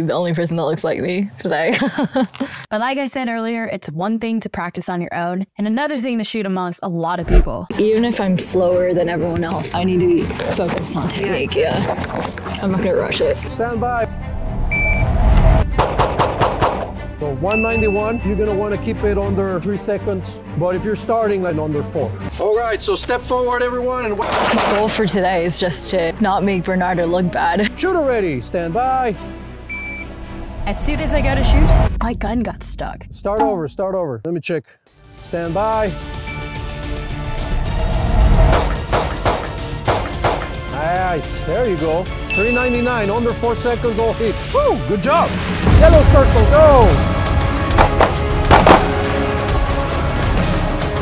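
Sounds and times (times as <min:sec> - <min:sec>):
background music: 0:07.3 - 0:34.1, 0:34.9 - 0:51.0
sharp pistol shots: 0:15.8 - 0:17.0, 0:38.6 - 0:40.6, 0:47.8 - 0:49.0.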